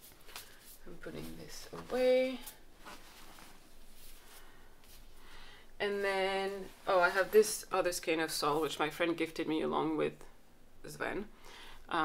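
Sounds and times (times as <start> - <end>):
faint rustling of yarn: 0.0 - 9.0.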